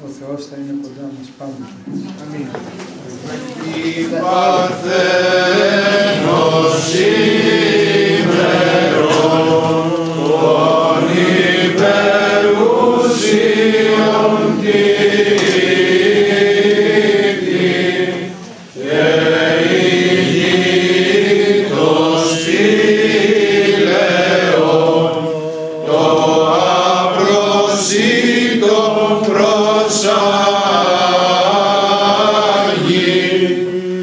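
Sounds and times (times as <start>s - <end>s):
group chanting a hymn in unison: 3.0s - 34.0s.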